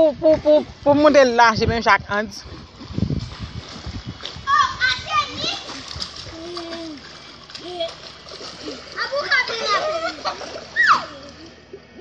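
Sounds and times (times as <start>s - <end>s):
water splashing in pool: 2.2s - 11.8s
children calling out: 4.4s - 11.6s.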